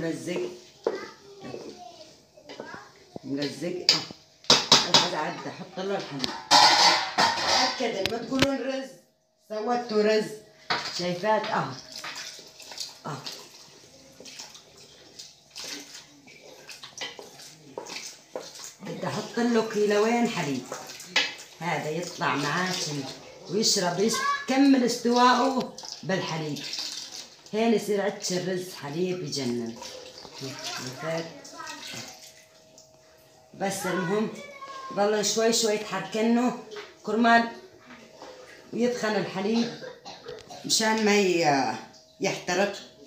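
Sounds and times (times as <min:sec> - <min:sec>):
spoon stirring and knocking pot: 0:02.5 - 0:08.6, 0:16.4 - 0:21.5
milk pouring into a pot: 0:11.8 - 0:18.8, 0:25.3 - 0:27.6.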